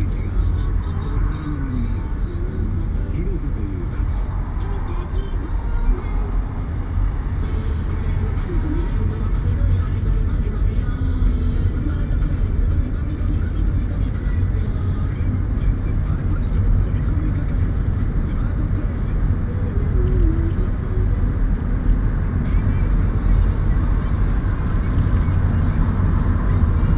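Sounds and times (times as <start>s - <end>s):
car engine rumble: 0.0s - 26.9s
road noise: 0.0s - 26.9s.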